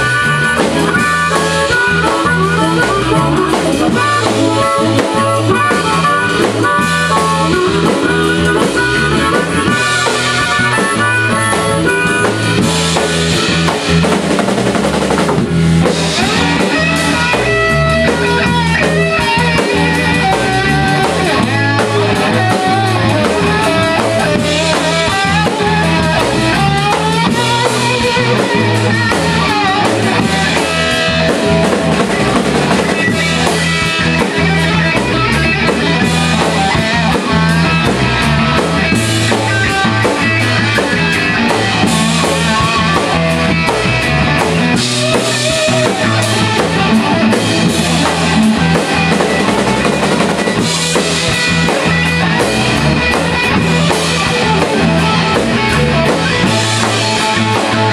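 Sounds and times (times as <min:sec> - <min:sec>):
bass guitar: 0:00.0 - 0:57.9
drum kit: 0:00.0 - 0:57.9
electric guitar: 0:00.0 - 0:57.9.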